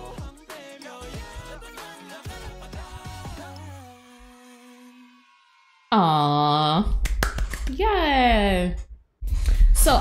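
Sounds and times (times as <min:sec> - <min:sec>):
pop song held note: 0:00.0 - 0:05.2.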